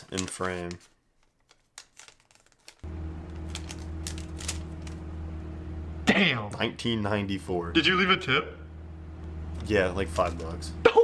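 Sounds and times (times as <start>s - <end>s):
clicks and rustling of wallet: 0.0s - 5.0s
steady low hum: 2.8s - 11.0s.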